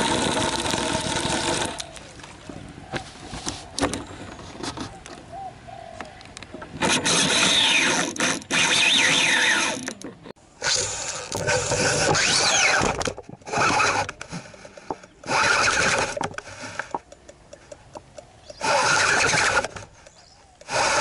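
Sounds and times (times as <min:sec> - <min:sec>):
reel whirring and scraping: 0:00.0 - 0:02.4, 0:06.8 - 0:21.0
wind rush and handling noise: 0:00.0 - 0:05.4.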